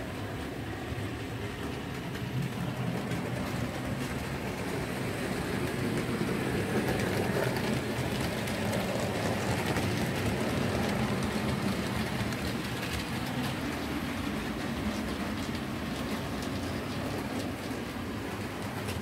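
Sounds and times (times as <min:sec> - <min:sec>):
model train rumbling: 0:00.0 - 0:19.0
wheels clicking over rail joints: 0:00.2 - 0:19.0.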